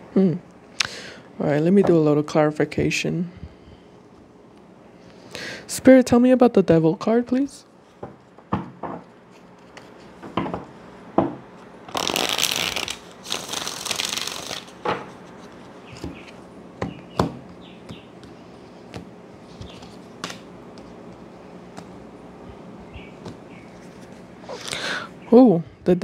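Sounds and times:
cards being shuffled: 11.9s - 16.4s, 17.8s - 22.0s, 23.2s - 24.8s.

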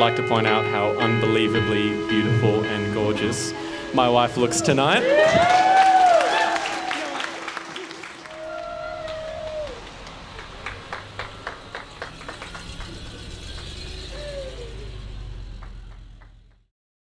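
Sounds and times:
car engine rumble: 0.0s - 6.0s, 7.9s - 16.7s
people clapping: 4.9s - 14.7s, 15.6s - 16.7s
people calling out: 13.9s - 15.0s.

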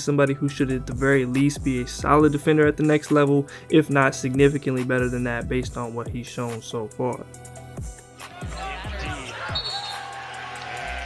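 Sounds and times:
music with deep thudding beat: 0.0s - 11.0s.

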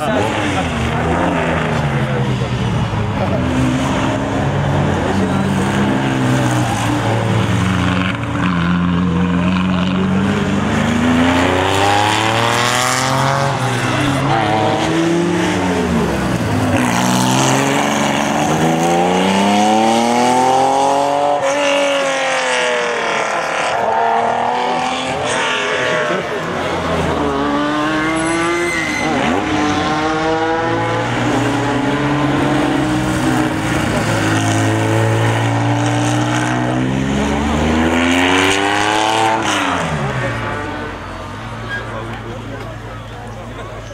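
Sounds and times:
rally car engine revving: 0.0s - 43.9s.

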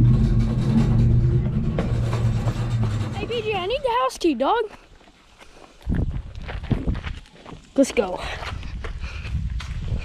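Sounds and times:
footsteps on gravel: 3.3s - 10.0s.

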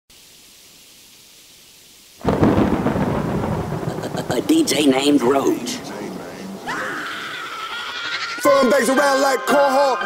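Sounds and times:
rain-like hiss: 0.1s - 10.0s
thunderclap rumbling: 2.2s - 7.6s.

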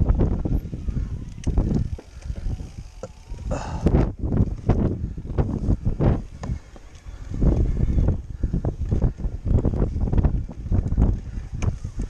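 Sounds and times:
wind buffeting microphone: 0.0s - 12.0s
bike rattles and knocks: 1.2s - 12.0s.

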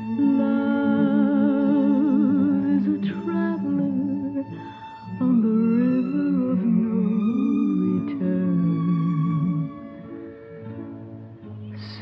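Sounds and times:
solo violin slow melody: 0.0s - 12.0s.

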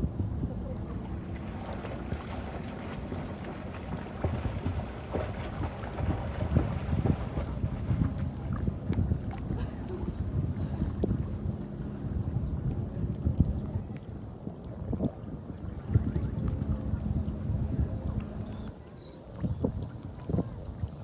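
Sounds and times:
sea water sloshing and lapping: 0.0s - 21.0s
wind buffeting microphone: 0.0s - 21.0s
low splashes and knocks: 1.2s - 11.4s.

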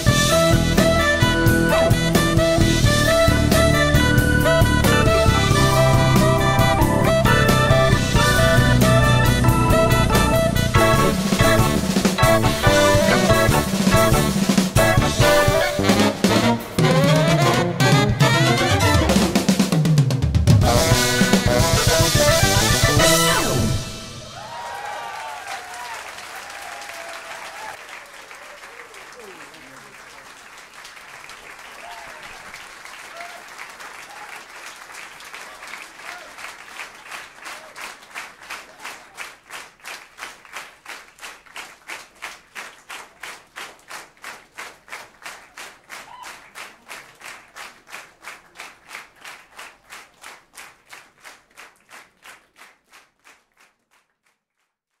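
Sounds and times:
audience applauding: 0.0s - 54.5s
audience cheering: 2.9s - 19.8s, 20.6s - 39.3s, 45.9s - 47.1s.

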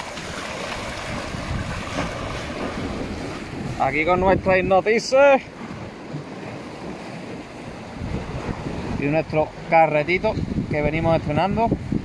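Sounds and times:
waves breaking against rocks: 0.0s - 12.0s
wind buffeting microphone: 0.0s - 12.0s.

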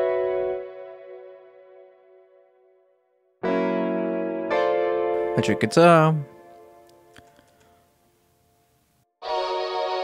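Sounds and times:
sampled electric guitar chords: 3.4s - 7.3s.

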